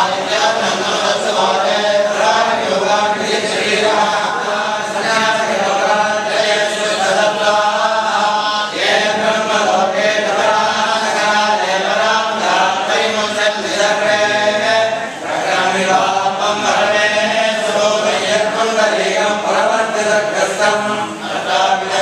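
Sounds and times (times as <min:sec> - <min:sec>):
men chanting in unison: 0:00.0 - 0:22.0.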